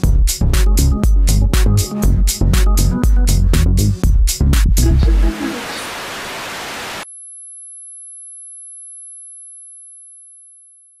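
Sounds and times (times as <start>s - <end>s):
electronic music with a beat: 0.0s - 5.8s
tv static hiss: 4.9s - 7.0s.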